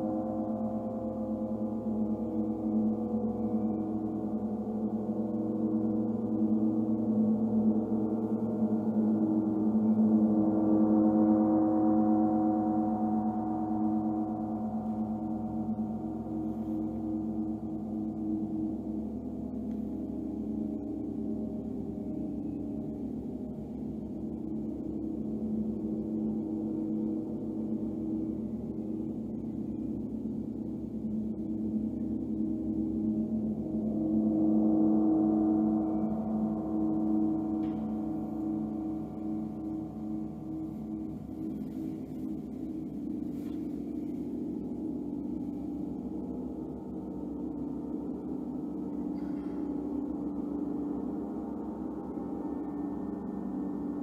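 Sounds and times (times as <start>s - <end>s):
large gongs resonating: 0.0s - 54.0s.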